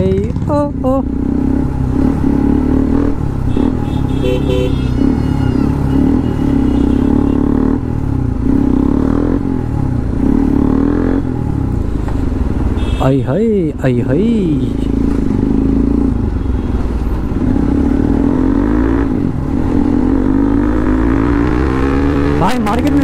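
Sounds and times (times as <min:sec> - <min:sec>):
motorcycle engine revving: 0:00.0 - 0:23.0.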